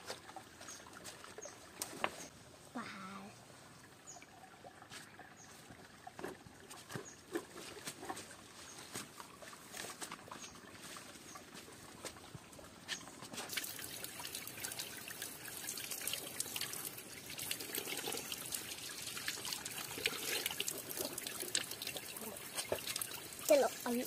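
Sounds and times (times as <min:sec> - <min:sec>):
water trickling onto rocks: 0:04.8 - 0:24.0.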